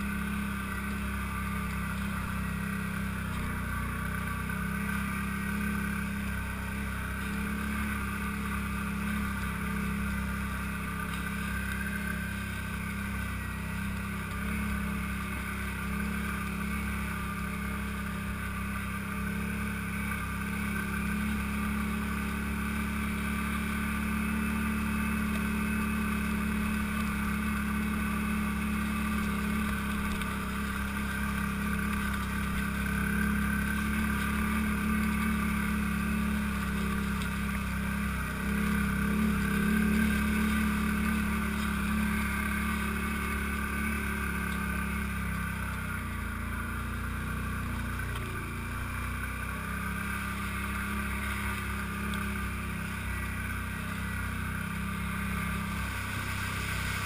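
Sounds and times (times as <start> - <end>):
atv engine droning: 0.0 - 57.0.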